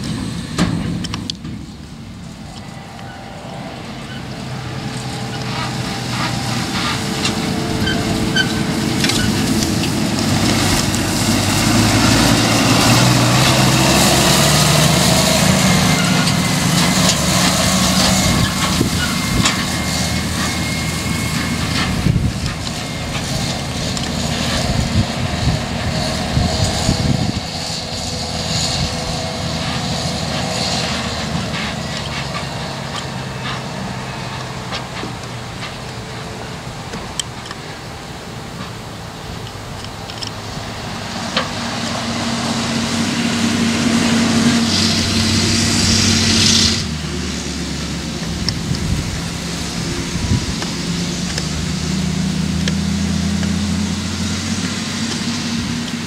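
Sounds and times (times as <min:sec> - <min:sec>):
trailer knocking and rattling: 0:00.0 - 0:02.6, 0:04.1 - 0:37.7
tractor diesel engine: 0:00.0 - 0:56.0.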